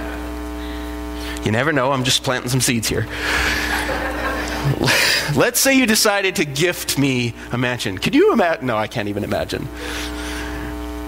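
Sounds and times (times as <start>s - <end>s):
steady low hum: 0.0s - 11.0s
congregation laughing: 3.2s - 5.5s.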